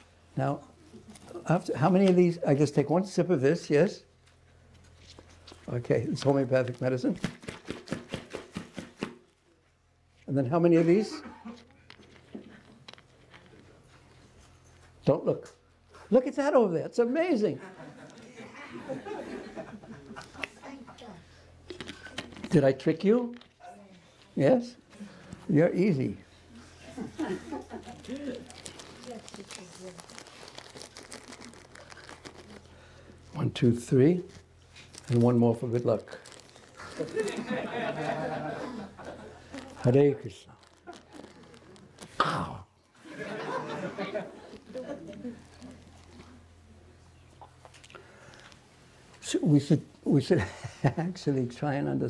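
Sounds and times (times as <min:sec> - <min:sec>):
packaging crinkling: 0:27.5 - 0:33.2, 0:34.2 - 0:37.6, 0:39.1 - 0:42.2, 0:44.4 - 0:46.4.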